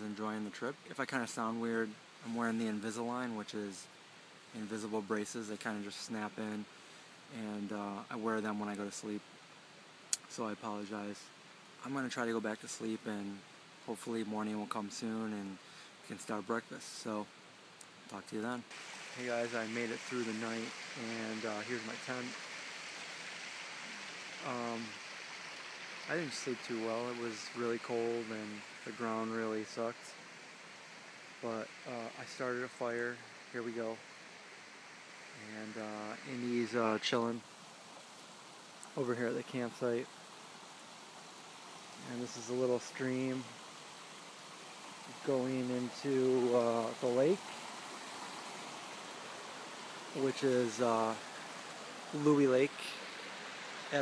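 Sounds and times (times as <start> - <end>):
stream flowing over rocks: 0.0 - 54.0
person speaking: 18.1 - 22.4, 23.9 - 25.0, 26.1 - 30.2, 31.4 - 34.0, 35.4 - 37.4, 42.0 - 43.5, 45.1 - 47.5, 50.1 - 51.2, 52.1 - 53.1
water hissing: 18.7 - 54.0.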